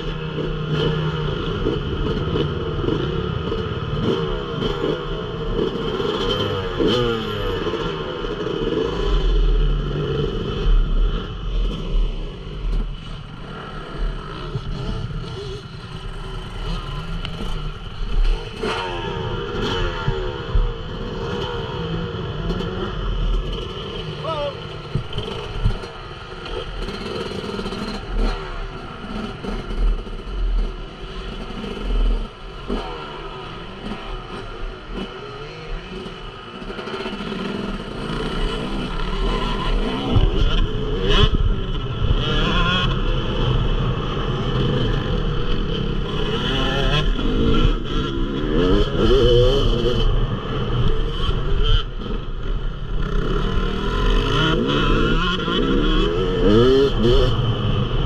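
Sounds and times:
motocross bike idling and revving: 0.0s - 58.0s
other motocross bikes revving: 0.0s - 58.0s.

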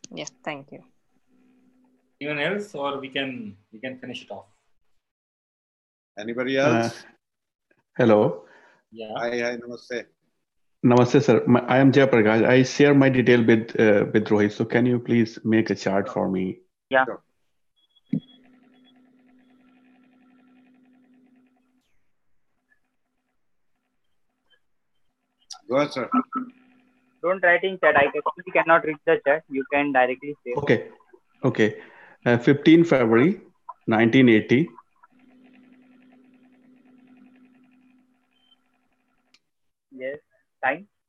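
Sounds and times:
fluttering buzzing hum: 18.2s - 28.9s, 34.0s - 39.3s.

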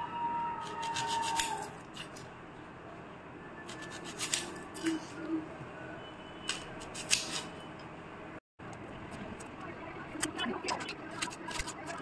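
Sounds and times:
knife slicing onion on stone: 0.6s - 2.2s, 3.7s - 5.0s, 6.5s - 7.6s.

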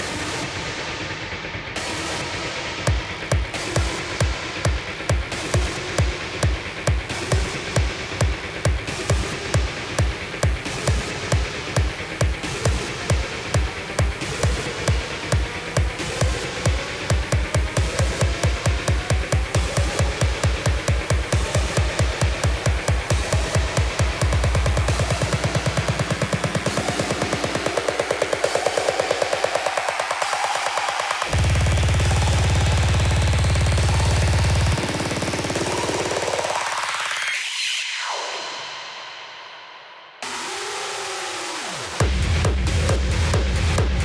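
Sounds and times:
electronic dance music: 0.0s - 44.0s.

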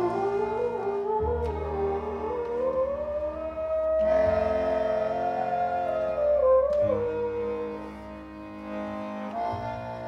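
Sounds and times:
folk ensemble playing: 0.0s - 10.0s
steady low drone: 0.0s - 10.0s.

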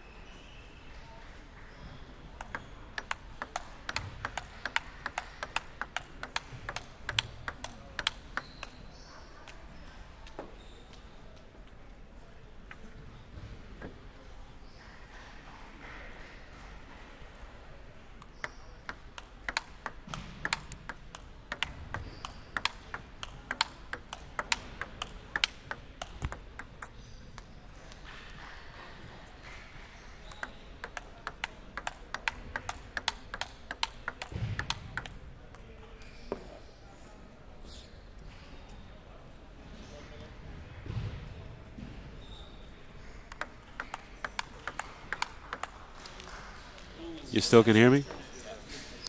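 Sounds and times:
table tennis ball clicks: 2.4s - 8.8s, 18.2s - 28.4s, 30.2s - 35.6s, 43.0s - 46.9s.

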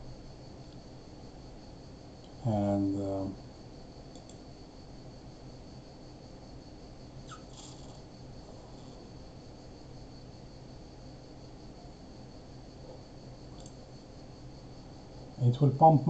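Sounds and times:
faint constant tones: 0.0s - 16.0s.

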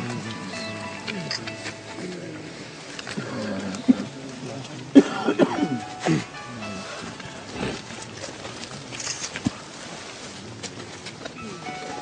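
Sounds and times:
mourners wailing: 0.0s - 8.9s
cough-like vocal burst: 4.9s - 6.3s.

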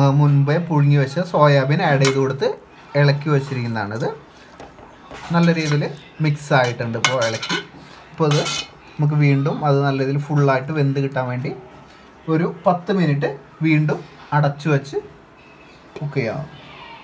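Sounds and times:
metal spoon scraping pot: 5.3s - 8.8s.

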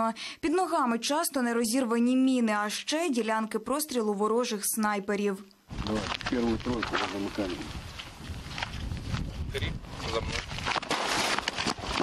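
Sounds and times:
footsteps on dirt track: 5.7s - 9.6s.

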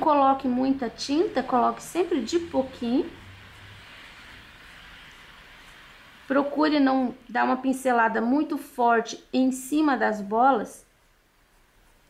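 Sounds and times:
person speaking: 0.0s - 3.2s
room tone hiss: 0.0s - 12.0s.

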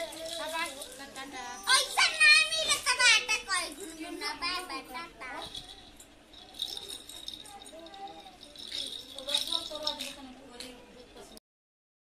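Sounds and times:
plastic baby rattle shaking: 0.0s - 2.1s, 5.4s - 10.3s.

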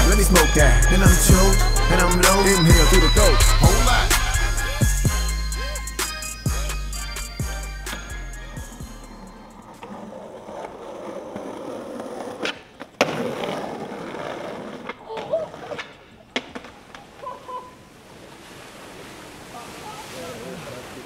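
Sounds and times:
skateboard wheels rolling on pavement: 8.8s - 19.5s
skateboard landing clack: 12.4s - 13.6s, 14.8s - 17.1s.

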